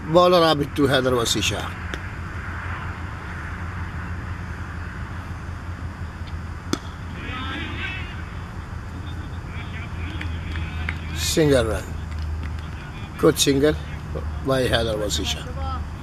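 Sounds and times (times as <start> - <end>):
low steady hum: 0.0 - 16.0
cricket bat hitting ball: 6.7 - 7.0
faint distant voices: 7.1 - 16.0.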